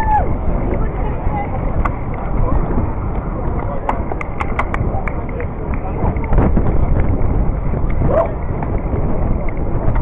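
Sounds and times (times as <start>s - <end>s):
crowd noise: 0.0s - 10.0s
wind buffeting microphone: 0.0s - 10.0s
sharp clicks or claps: 3.9s - 5.4s.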